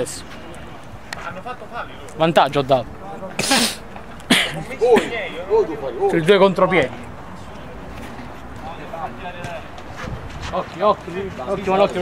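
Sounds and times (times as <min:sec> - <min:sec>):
hissing bursts of breath: 0:03.4 - 0:03.9.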